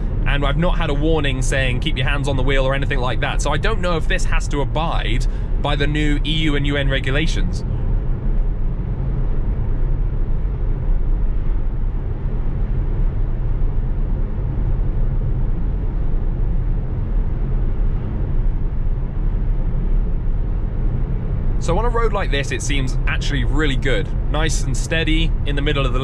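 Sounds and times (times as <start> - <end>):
road and tyre noise: 0.0 - 26.0.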